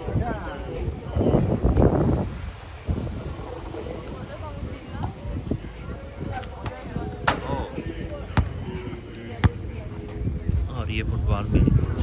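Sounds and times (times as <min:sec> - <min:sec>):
people talking: 0:00.0 - 0:01.5, 0:03.4 - 0:12.0
ball bouncing on paving: 0:06.4 - 0:08.6.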